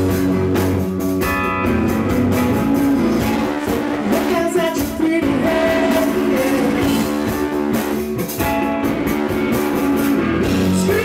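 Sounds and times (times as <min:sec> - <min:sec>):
rock band playing live: 0:00.0 - 0:11.0.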